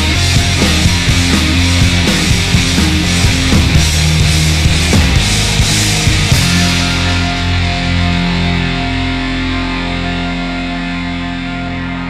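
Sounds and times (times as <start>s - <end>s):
distorted electric guitar chord ringing: 0.0s - 12.0s.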